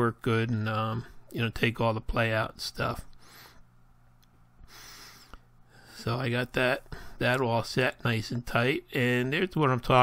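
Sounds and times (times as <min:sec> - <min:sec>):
person breathing in softly: 0:03.2 - 0:03.7, 0:04.6 - 0:06.1.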